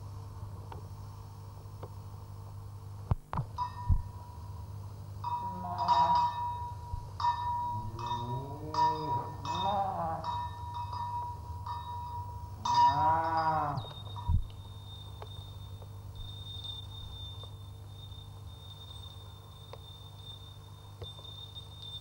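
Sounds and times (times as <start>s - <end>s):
faint high whine: 0.0s - 22.0s
steady high tone: 5.2s - 22.0s.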